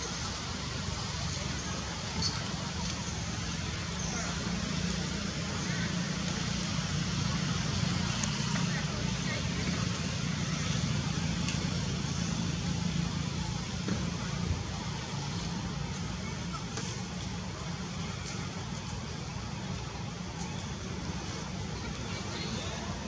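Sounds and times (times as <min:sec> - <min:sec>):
faint voices: 0:00.0 - 0:23.0
low rumble of distant traffic: 0:00.0 - 0:23.0.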